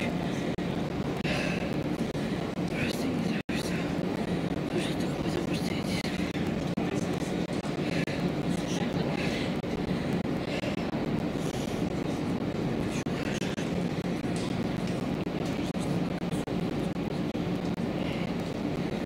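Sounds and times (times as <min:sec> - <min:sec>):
distant indistinct voices: 0:00.0 - 0:16.5
steady low hum: 0:00.0 - 0:19.0.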